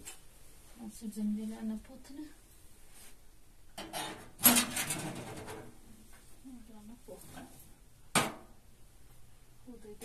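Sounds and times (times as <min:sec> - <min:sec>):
metal door rattling: 0:03.8 - 0:05.7.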